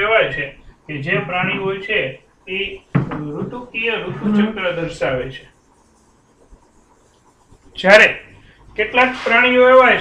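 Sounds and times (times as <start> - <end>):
man lecturing: 0.0 - 5.4, 7.8 - 10.0.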